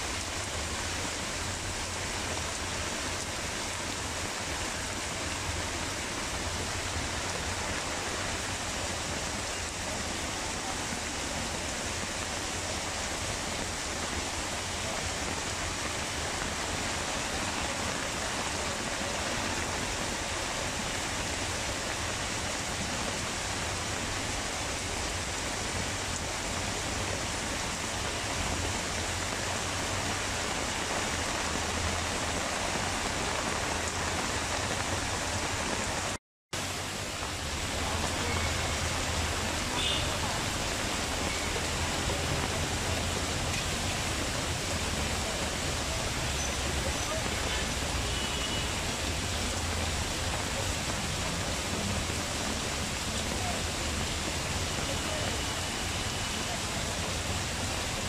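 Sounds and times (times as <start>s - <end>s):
heavy rain on a tarpaulin roof: 0.0s - 58.0s
water streaming off roof edge: 0.0s - 58.0s.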